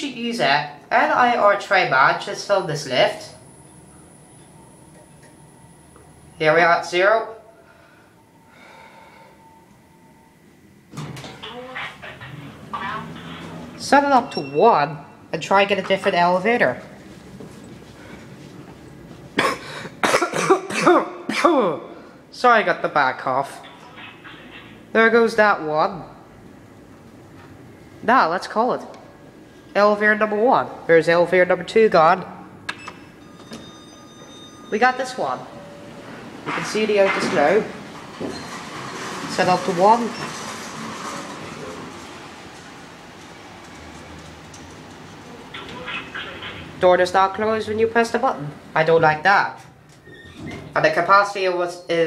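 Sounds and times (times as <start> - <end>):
lift arrival and doors opening: 2.2 - 18.9, 32.6 - 46.9, 48.6 - 51.0
man coughing: 19.4 - 21.7.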